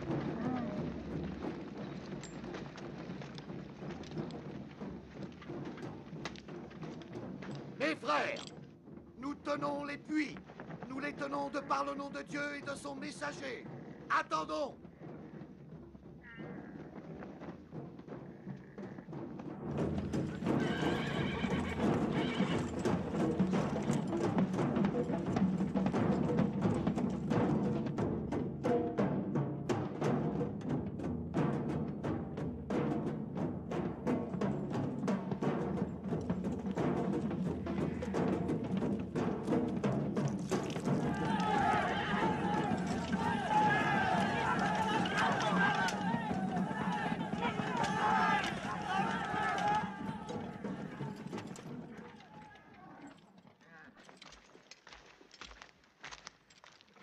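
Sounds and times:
horses neighing: 0.0s - 5.7s, 10.4s - 26.2s, 36.5s - 53.9s
horse hoofbeats: 0.0s - 57.0s
film music: 32.0s - 52.3s.

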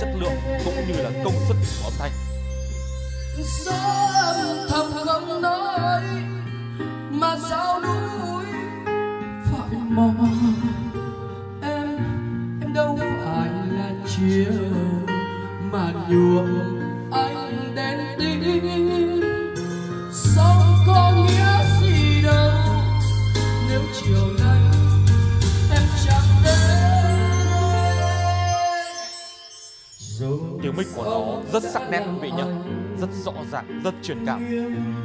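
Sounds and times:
man singing karaoke: 0.0s - 2.3s, 7.1s - 8.8s, 12.6s - 29.3s, 30.0s - 35.0s
backing track with guitar and bass: 0.0s - 28.8s.

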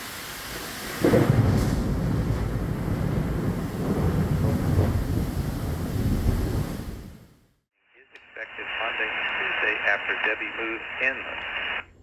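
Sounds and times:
heavy rain: 0.0s - 7.4s
strong gusting wind: 1.1s - 7.2s.

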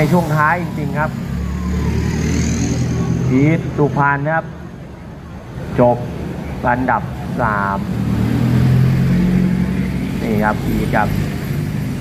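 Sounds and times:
truck engine rumbling past: 0.0s - 12.0s.

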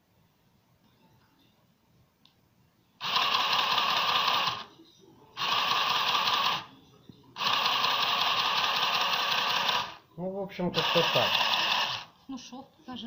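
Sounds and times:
sewing machine stitching: 3.0s - 4.6s, 5.4s - 6.6s, 7.4s - 10.0s, 10.8s - 12.1s.

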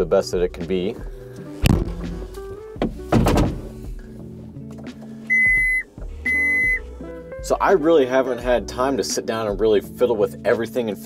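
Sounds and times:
background music: 0.0s - 11.0s
dull thumps inside a cab: 0.7s - 6.2s
electronic beeps: 5.3s - 6.8s.

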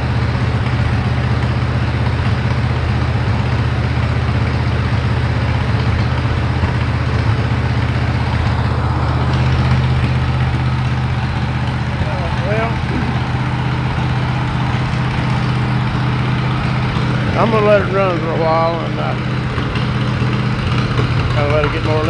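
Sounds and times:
engine running steadily: 0.0s - 22.0s.

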